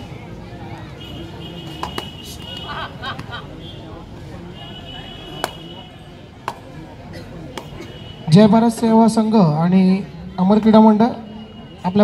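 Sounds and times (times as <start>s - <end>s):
faint background chatter: 0.0s - 12.0s
sharp smacks: 1.7s - 2.2s, 5.4s - 5.6s, 7.5s - 7.9s.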